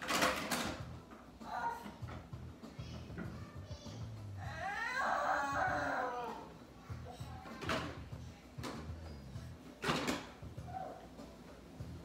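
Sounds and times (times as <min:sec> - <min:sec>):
plastic toys knocking: 0:00.0 - 0:00.9.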